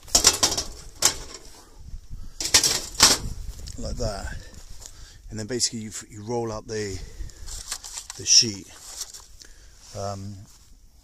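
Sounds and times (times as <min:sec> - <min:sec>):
sheet metal panels rattling: 0:00.0 - 0:01.5, 0:02.4 - 0:03.3.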